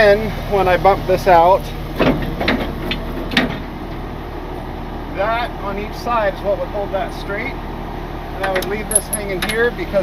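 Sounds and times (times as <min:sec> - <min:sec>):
truck engine idling: 0:00.0 - 0:10.0
metallic chain clanks: 0:08.5 - 0:09.7.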